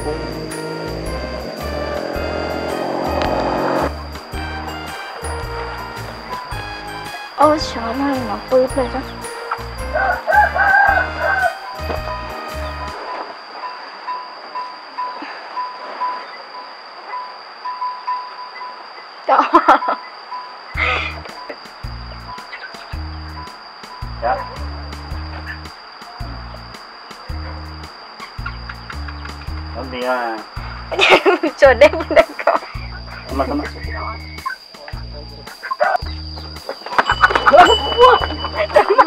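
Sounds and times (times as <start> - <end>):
music with steady bass beat: 0.0 - 13.0, 20.8 - 30.0, 30.6 - 31.1, 32.8 - 39.0.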